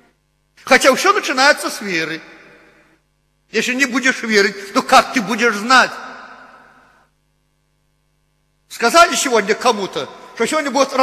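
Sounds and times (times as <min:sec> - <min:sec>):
faint electrical hum: 0:00.0 - 0:11.0
man speaking: 0:00.6 - 0:02.4, 0:03.5 - 0:06.8, 0:08.7 - 0:11.0.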